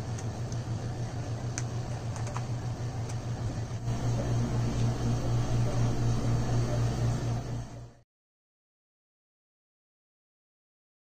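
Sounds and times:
steady low hum: 0:00.0 - 0:08.0.

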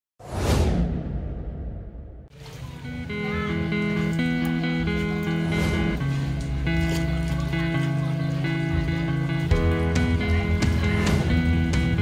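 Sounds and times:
whoosh with deep boom: 0:00.2 - 0:02.3
background music held notes: 0:02.4 - 0:12.0.

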